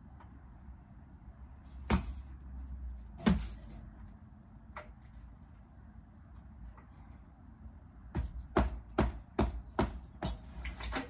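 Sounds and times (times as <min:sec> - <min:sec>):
sharp knock on brickwork: 0:08.1 - 0:10.4.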